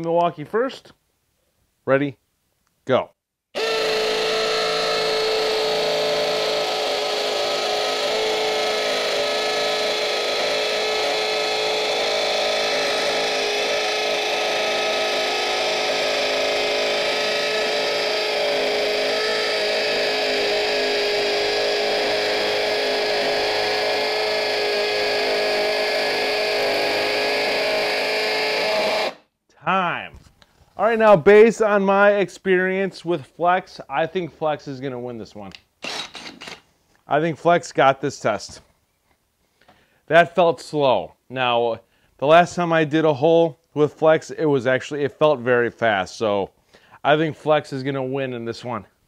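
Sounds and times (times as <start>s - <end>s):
hammer drill boring into concrete: 3.6s - 29.2s, 35.8s - 36.6s.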